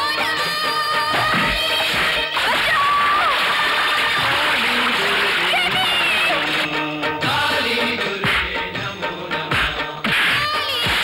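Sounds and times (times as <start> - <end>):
stick swishing and striking: 9.5 - 11.0.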